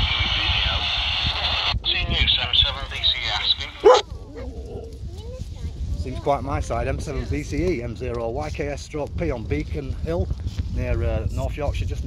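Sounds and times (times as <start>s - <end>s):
voice over radio: 0.0s - 4.0s.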